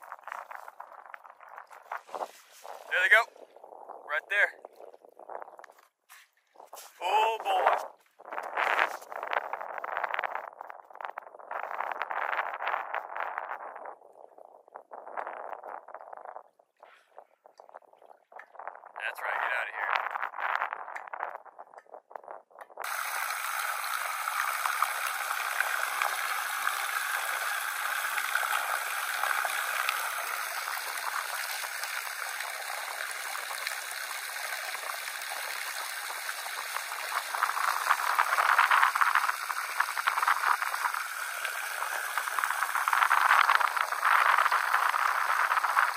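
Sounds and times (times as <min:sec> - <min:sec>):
water lapping: 0:22.8 - 0:45.9.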